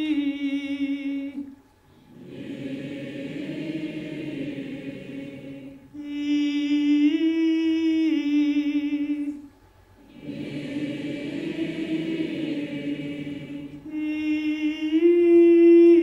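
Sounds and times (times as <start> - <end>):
audience singing in unison: 2.1 - 5.9, 10.0 - 14.2
woman singing a held note: 13.8 - 16.0.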